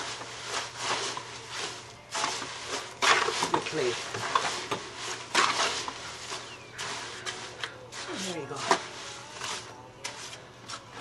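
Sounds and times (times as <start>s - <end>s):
garden fork scraping wet clay mix: 0.0s - 11.0s.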